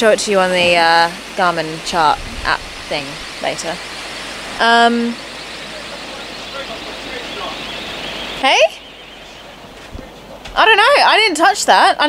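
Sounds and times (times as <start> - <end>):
sea noise: 0.0 - 11.4
wind rushing: 0.7 - 10.2.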